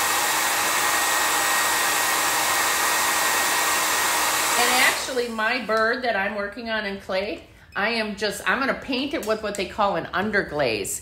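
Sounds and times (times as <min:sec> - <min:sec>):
handheld dryer blowing air: 0:00.0 - 0:05.7.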